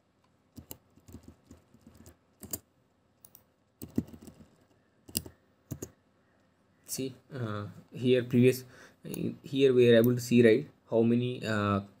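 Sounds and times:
typing on a computer keyboard: 0.6s - 2.6s, 3.2s - 5.9s.

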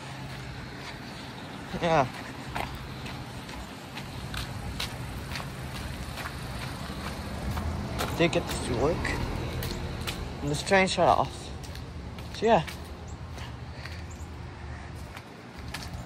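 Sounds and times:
faint footsteps on pavement: 0.0s - 16.0s.

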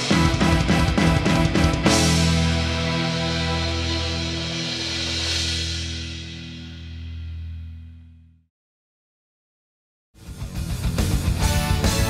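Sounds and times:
rock band holding a chord: 0.0s - 7.4s, 10.2s - 12.0s
cymbal crash: 0.0s - 7.6s.

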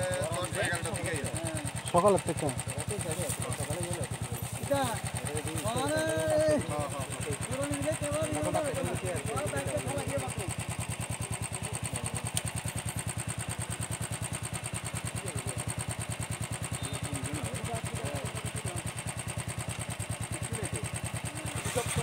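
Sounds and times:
engine idling: 0.0s - 22.0s.

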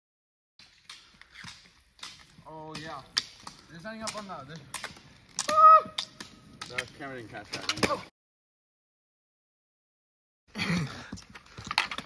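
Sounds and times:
ski pole tips clicking on asphalt: 0.6s - 8.0s.

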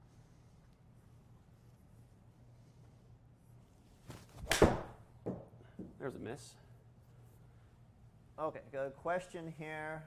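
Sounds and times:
golf club striking ball: 4.4s - 5.0s.

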